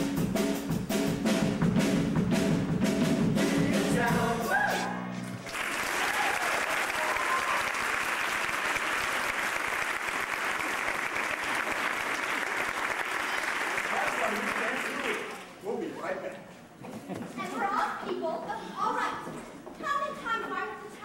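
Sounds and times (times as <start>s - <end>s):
audience applauding: 5.4s - 15.5s.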